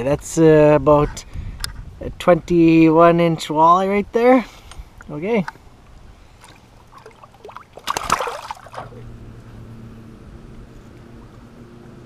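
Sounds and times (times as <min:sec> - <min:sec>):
low motor hum: 0:05.7 - 0:12.0
fish splashing in water: 0:06.2 - 0:09.0.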